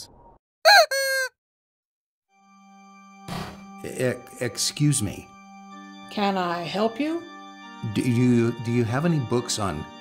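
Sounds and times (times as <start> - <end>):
comic honking sound effect: 0.7 - 1.3.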